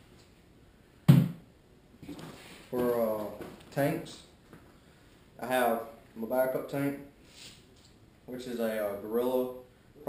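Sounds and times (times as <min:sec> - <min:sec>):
mask thump on plastic table: 0:01.1 - 0:01.4.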